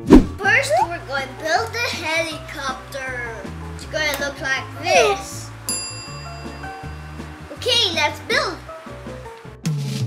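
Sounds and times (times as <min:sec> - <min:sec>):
falling pitch transition effect: 0:00.0 - 0:01.0
child talking: 0:00.4 - 0:05.6, 0:07.5 - 0:08.7.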